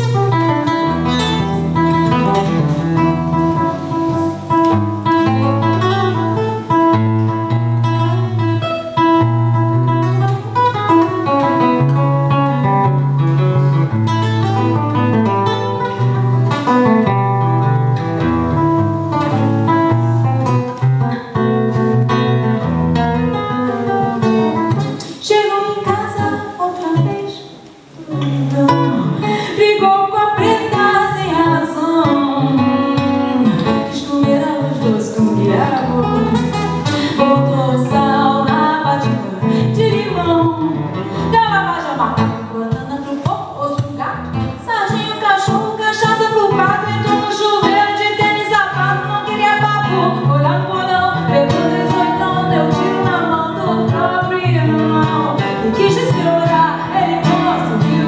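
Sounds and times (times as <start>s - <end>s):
acoustic guitar: 0.0s - 58.0s
woman singing: 23.4s - 58.0s.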